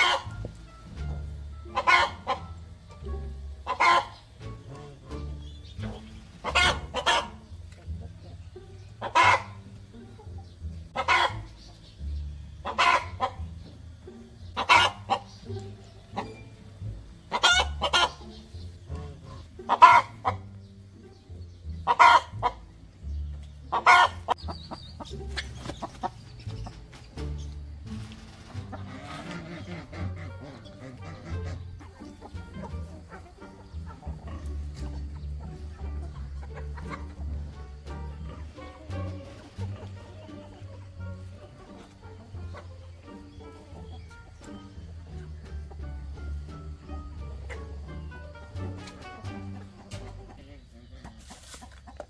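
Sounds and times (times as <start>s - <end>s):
hen calling loudly: 0.0s - 0.5s, 1.6s - 2.6s, 3.4s - 9.8s, 10.9s - 11.8s, 12.4s - 13.6s, 14.4s - 20.6s, 21.8s - 22.8s, 23.7s - 26.2s, 28.6s - 44.9s
hen clucking: 0.0s - 52.0s.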